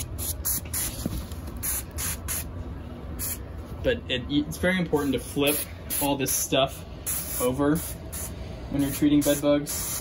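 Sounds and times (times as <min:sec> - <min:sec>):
hand sprayer hissing bursts: 0:07.1 - 0:10.0.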